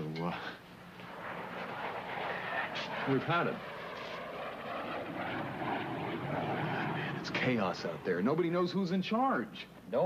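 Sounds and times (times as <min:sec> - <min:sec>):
engine-like droning din: 0:00.8 - 0:09.1.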